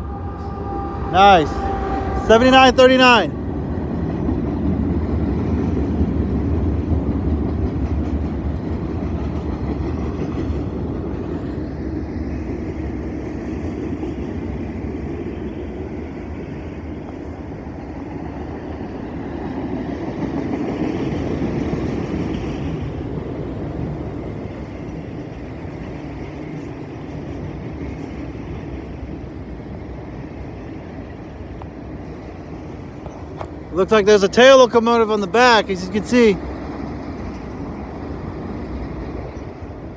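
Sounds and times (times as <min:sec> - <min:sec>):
freight train wheels rumbling on rails: 0:00.0 - 0:39.9.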